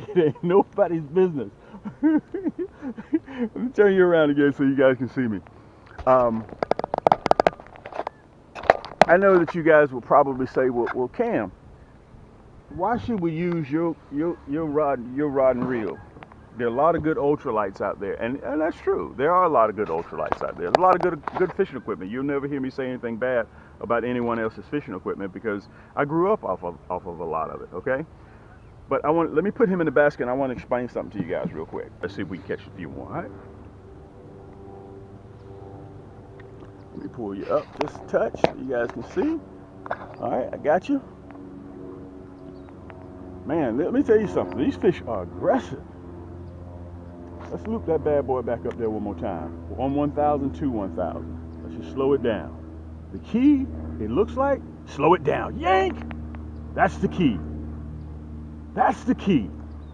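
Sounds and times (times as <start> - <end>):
small boat motor humming: 0.0 - 59.9
small clicks and ticks: 42.4 - 43.2.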